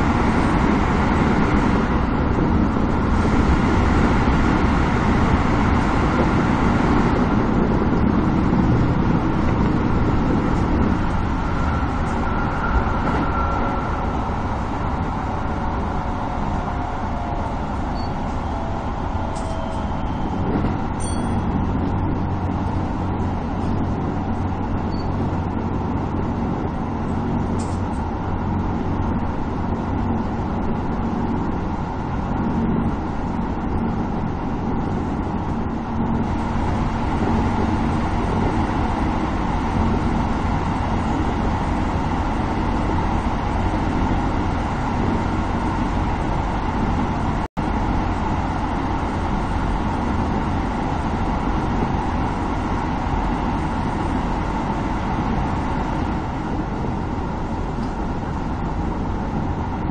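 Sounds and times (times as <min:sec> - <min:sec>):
electric train rumbling: 0:00.0 - 0:59.9.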